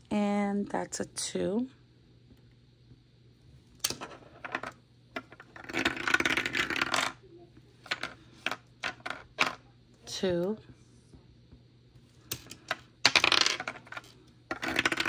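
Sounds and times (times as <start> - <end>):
dice clattering through dice tower: 3.8 - 7.2, 7.9 - 9.6, 12.3 - 15.0.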